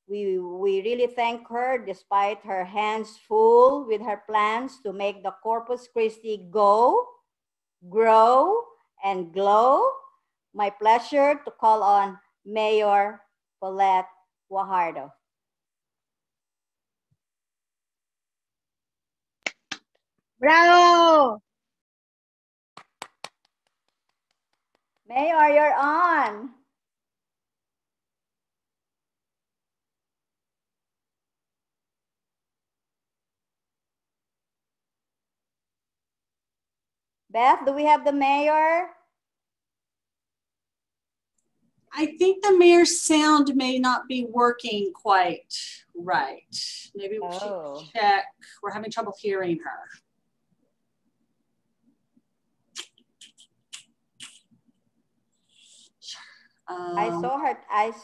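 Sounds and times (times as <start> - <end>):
hand clapping: 19.4 - 20.0, 22.8 - 25.1, 52.8 - 54.5.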